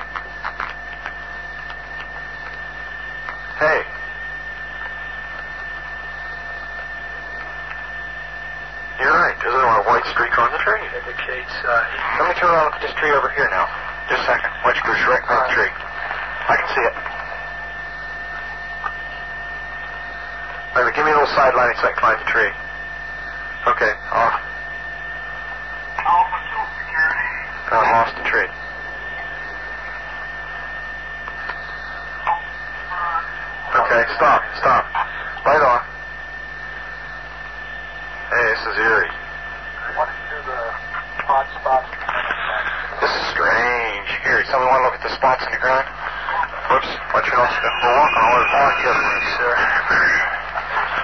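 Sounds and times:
radio chatter: 0.0s - 51.0s
steady high-pitched hum: 0.0s - 51.0s
muffled men's voices: 3.3s - 4.0s, 9.0s - 17.5s, 20.5s - 22.7s, 23.6s - 24.5s, 25.8s - 30.3s, 31.3s - 36.0s, 38.2s - 51.0s
tape hiss: 39.8s - 51.0s.

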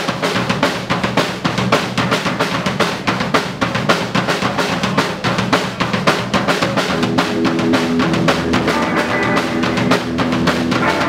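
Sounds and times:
drums keeping even beat: 0.0s - 11.0s
live band playing fast music: 0.0s - 11.0s
electric guitar: 6.9s - 11.0s.

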